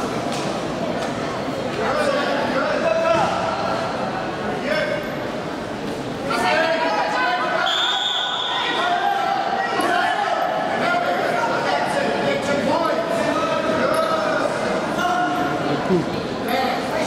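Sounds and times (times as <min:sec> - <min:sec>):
voices shouting in a hall: 0:06.2 - 0:17.0
short steady whistle: 0:07.6 - 0:08.6.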